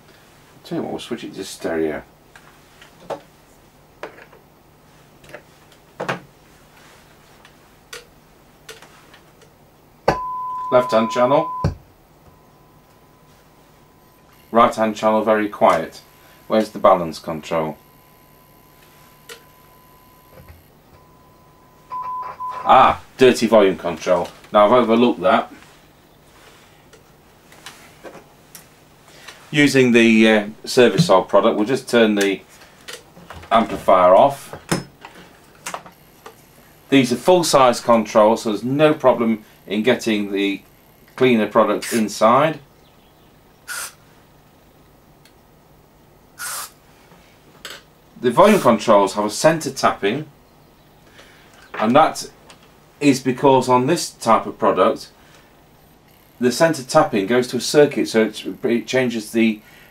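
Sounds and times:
oscillator test tone: 10.1 - 14.8
aerosol spray hissing: 43.7 - 44.0, 46.4 - 46.8.

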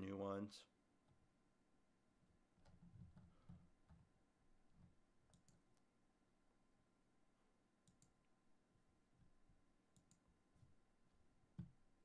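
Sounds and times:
computer mouse clicks: 4.8 - 5.9, 7.8 - 8.2, 9.9 - 10.3.

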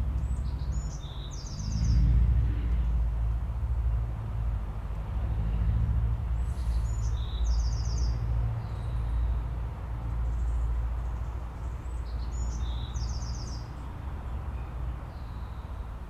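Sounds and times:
songbird singing: 0.0 - 4.5, 6.2 - 16.0.

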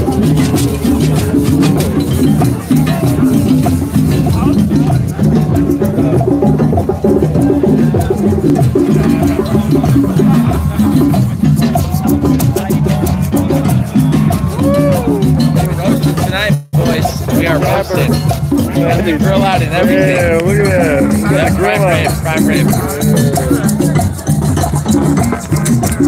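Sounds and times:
crowd voices: 0.0 - 26.0
hand drums playing: 0.0 - 26.0.

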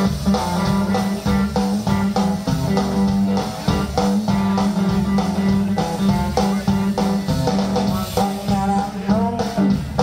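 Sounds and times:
bass guitar: 0.0 - 10.0
guitar: 0.0 - 10.0.

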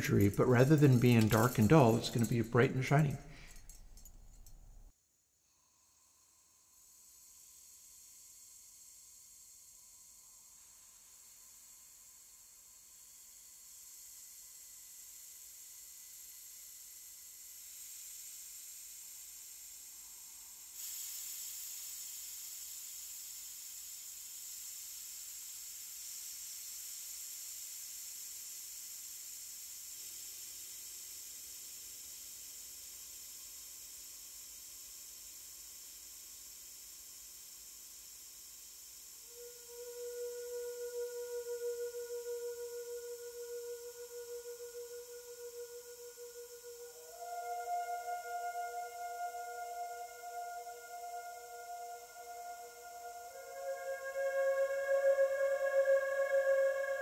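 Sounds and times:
tambourine jingles with reverb: 0.0 - 4.9.

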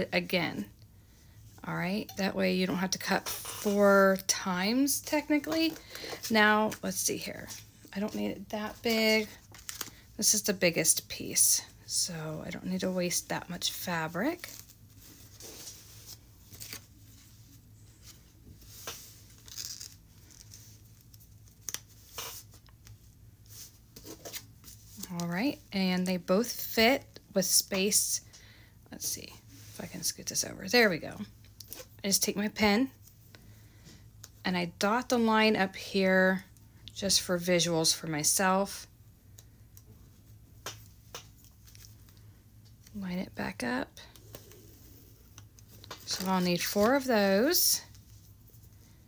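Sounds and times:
pen and paper handling noises: 44.0 - 48.9.

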